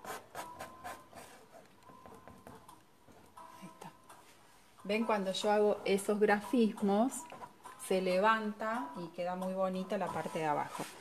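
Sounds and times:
spatula scraping paint on canvas: 9.9 - 11.0.

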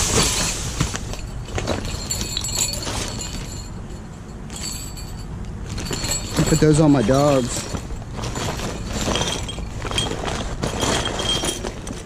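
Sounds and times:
plastic bags rustling: 0.0 - 3.9, 4.5 - 12.0
small jingle bells jingling: 0.0 - 12.0.

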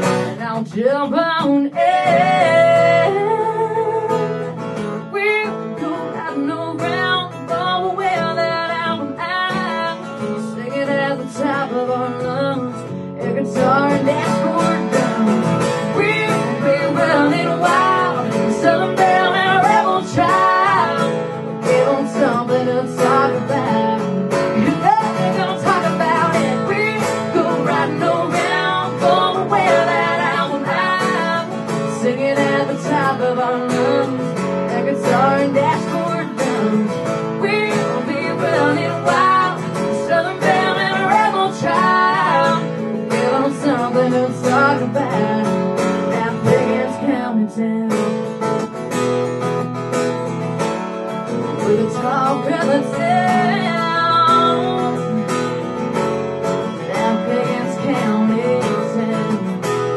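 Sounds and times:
woman singing: 0.0 - 48.3, 51.4 - 55.6, 56.6 - 59.9
acoustic guitars strummed: 0.0 - 59.9.

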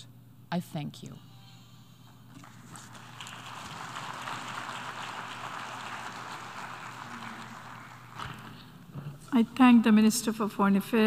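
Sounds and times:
people clapping: 2.3 - 8.9.

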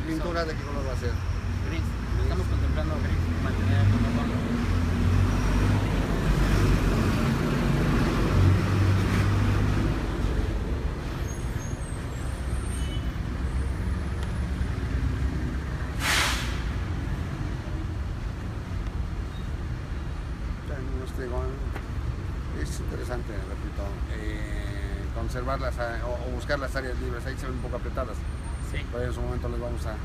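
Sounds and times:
heavy vehicle engine rumbling: 0.0 - 22.5
air brakes hissing: 15.9 - 16.8.

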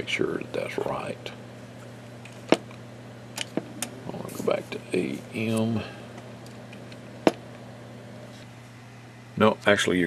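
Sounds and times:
low hum: 0.0 - 9.6.

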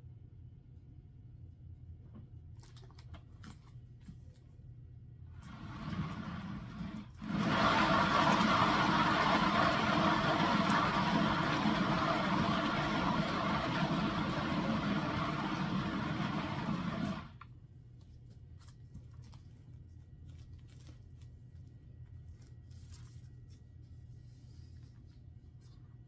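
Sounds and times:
turntable motor whirring: 7.2 - 17.4.

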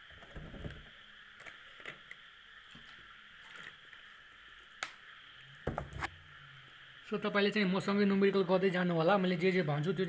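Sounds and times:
faint background hiss: 0.0 - 10.0.

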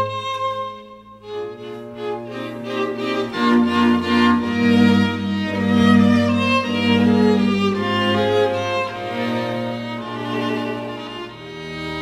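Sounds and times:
violin melody over low strings: 0.0 - 12.0.

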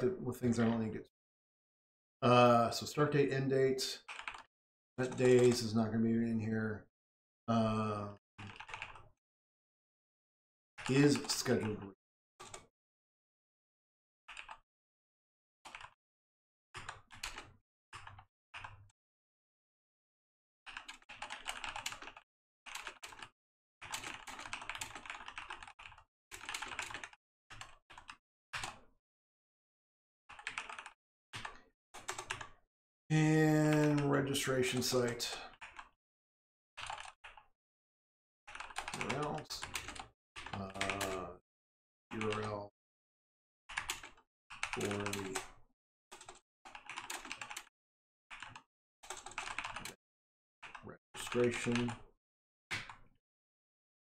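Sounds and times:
typing on computer keyboard: 4.1 - 5.6, 8.4 - 9.1, 10.8 - 11.8, 14.3 - 14.6, 15.7 - 16.0, 16.8 - 18.8, 20.7 - 28.8, 30.3 - 32.6, 33.6 - 36.0, 36.8 - 37.5, 38.5 - 41.3, 42.1 - 42.6, 43.7 - 47.7, 48.3 - 50.0, 50.6 - 52.0
voice murmuring: 40.6 - 41.4.

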